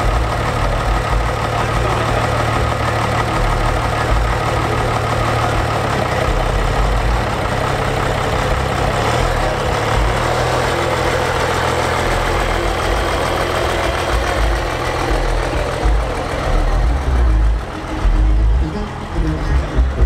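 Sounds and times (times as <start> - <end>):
diesel engine running at low revs: 0.0 - 20.0.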